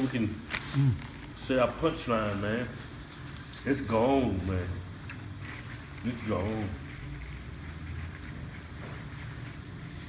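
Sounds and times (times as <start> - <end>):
wrapper rustling: 0.0 - 10.0.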